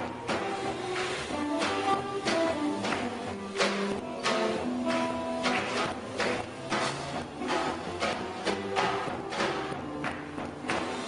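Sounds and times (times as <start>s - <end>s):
crisp percussion hits: 0.0s - 11.0s
piano chords: 0.0s - 11.0s
upright bass: 0.0s - 11.0s.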